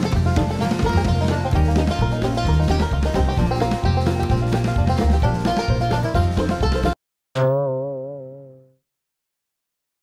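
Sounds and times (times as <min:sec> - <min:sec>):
cartoon boing sound effect: 0:07.4 - 0:08.8.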